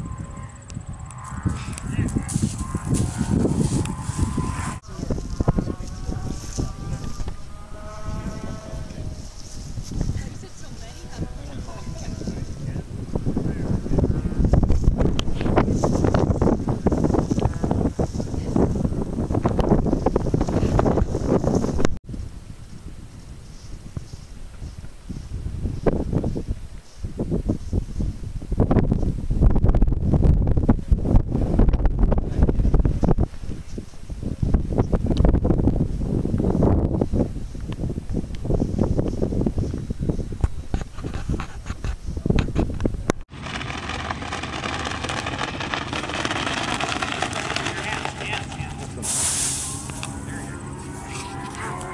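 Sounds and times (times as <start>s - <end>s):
steady hum with pitched tones: 0.0s - 9.6s, 48.8s - 51.9s
wind buffeting microphone: 0.0s - 51.9s.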